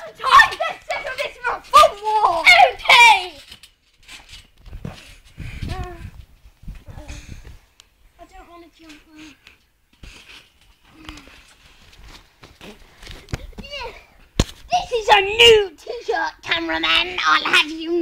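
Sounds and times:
child shouting: 0:00.0 - 0:03.4
children talking: 0:00.0 - 0:03.6, 0:08.2 - 0:09.6, 0:12.6 - 0:18.0.

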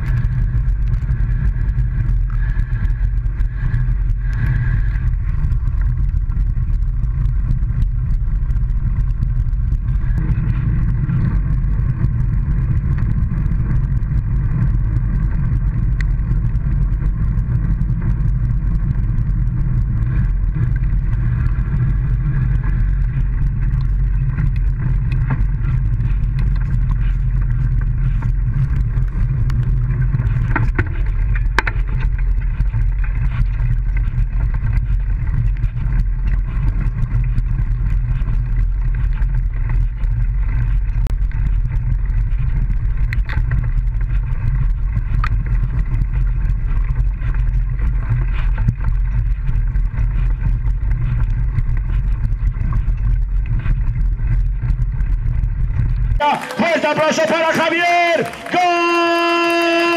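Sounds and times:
wind on microphone: 0:00.0 - 0:56.2
tyre noise: 0:00.0 - 0:59.9.

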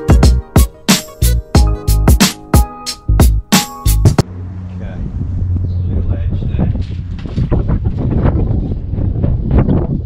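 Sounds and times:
wind buffeting microphone: 0:04.6 - 0:10.0.

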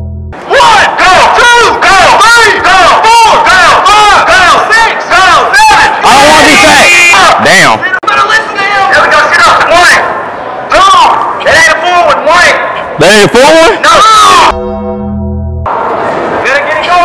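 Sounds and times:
young men shouting rhythmically: 0:00.5 - 0:07.4.

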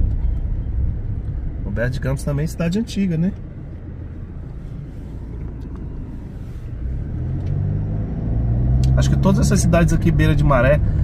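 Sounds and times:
car engine hum: 0:00.0 - 0:11.0.

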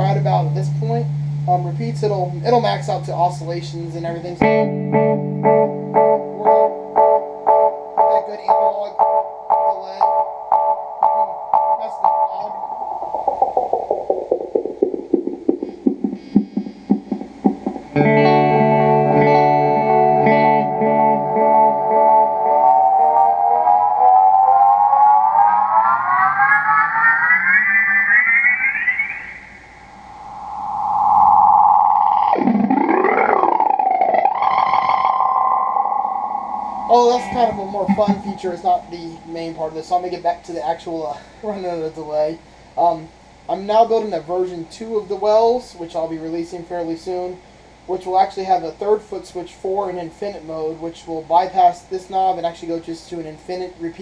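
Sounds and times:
delay feedback tone: 0:00.0 - 0:40.7
guitar delay repeats pulsing: 0:00.0 - 0:40.8.

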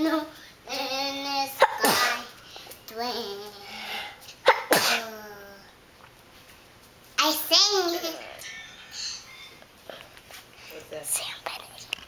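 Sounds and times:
person sneezing: 0:04.4 - 0:05.1.

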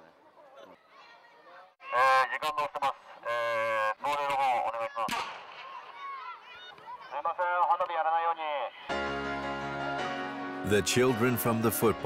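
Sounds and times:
man shouting through megaphone: 0:01.8 - 0:05.2, 0:07.0 - 0:08.9.

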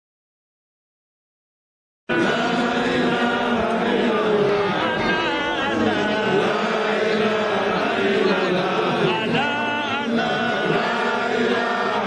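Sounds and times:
crowd chanting: 0:02.1 - 0:12.0.

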